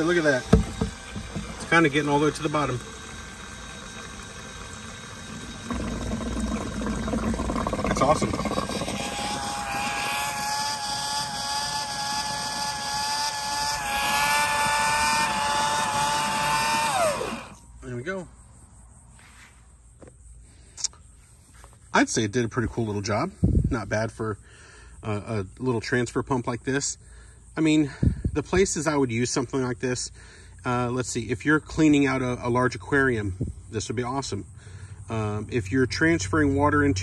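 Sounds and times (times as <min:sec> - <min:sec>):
water pump sucking water: 0:00.0 - 0:17.7
low pump hum: 0:00.0 - 0:17.8.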